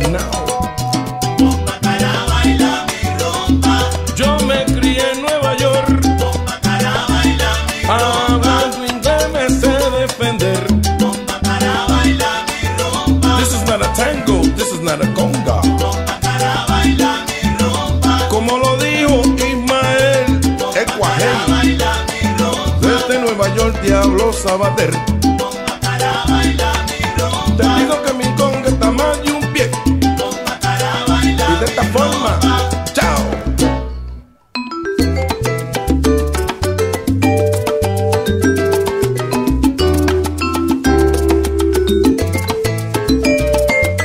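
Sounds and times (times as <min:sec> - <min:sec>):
salsa music: 0:00.0 - 0:44.0.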